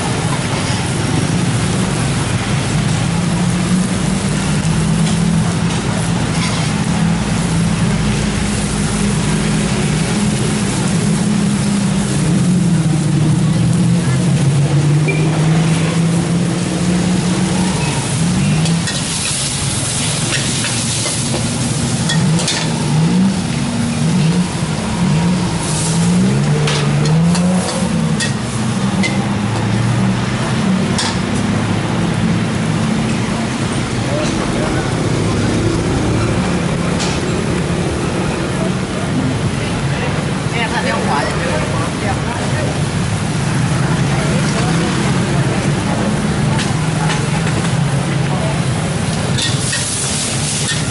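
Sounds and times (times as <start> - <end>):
food frying in a wok: 0.0 - 50.9.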